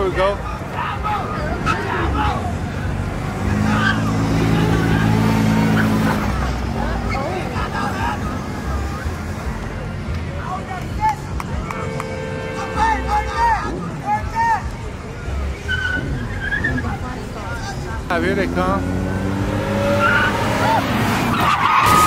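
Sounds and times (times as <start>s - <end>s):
car engines idling: 0.0s - 22.0s
crowd voices and calls: 0.0s - 22.0s.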